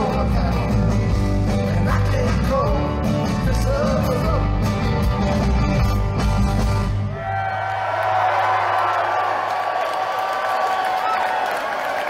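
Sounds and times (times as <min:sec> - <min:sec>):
audience cheering and whooping: 0:07.1 - 0:12.0.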